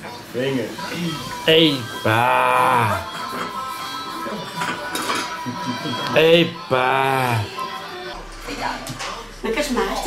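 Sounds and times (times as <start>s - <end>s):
murmur of voices: 0.0s - 10.0s
plates and cutlery clinking: 0.8s - 6.4s.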